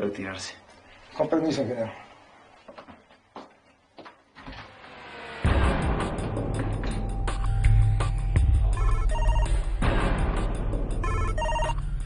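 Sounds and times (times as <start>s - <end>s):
background music: 5.4s - 12.0s
telephone ringing: 8.8s - 9.7s, 11.0s - 12.0s.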